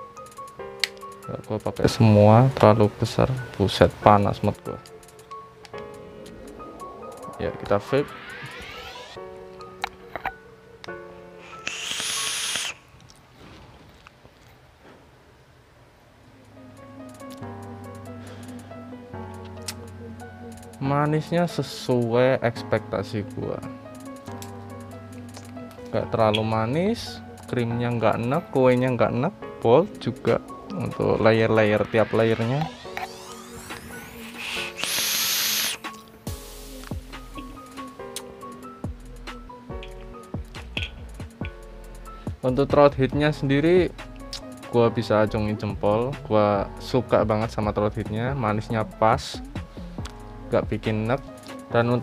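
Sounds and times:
background music with held notes: 0.0 - 12.7, 16.2 - 52.0
vape airflow hiss and coil sizzle: 11.4 - 12.9, 31.6 - 38.6.

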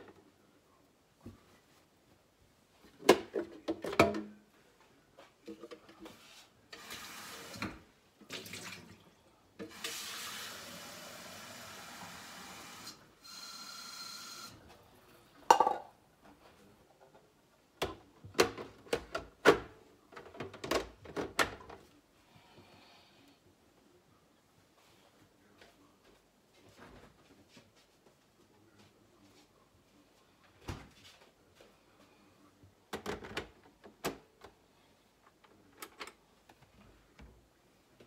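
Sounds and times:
water running: 6.8 - 9.1.

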